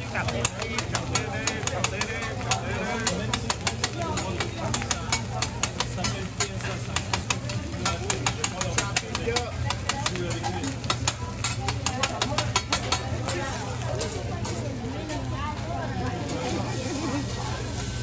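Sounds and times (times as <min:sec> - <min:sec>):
metal spatulas clacking on griddle: 0:00.0 - 0:14.6.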